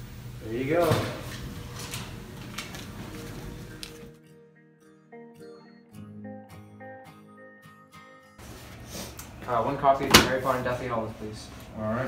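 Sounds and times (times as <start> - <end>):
room noise: 8.4 - 12.0.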